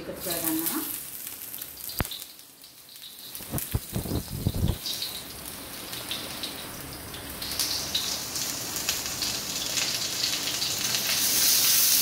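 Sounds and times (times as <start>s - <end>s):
ginger sizzling in hot oil: 0.0s - 12.0s.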